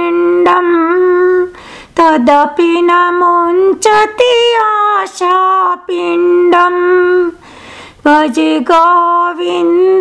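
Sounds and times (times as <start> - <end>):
woman singing a hymn: 0.0 - 10.0
woman breathing: 1.5 - 2.0, 7.4 - 8.1.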